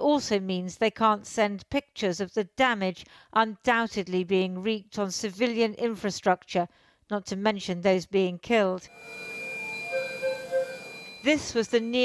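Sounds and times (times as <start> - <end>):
high electronic tones: 8.9 - 12.0
soft bell-like notes: 8.9 - 12.0.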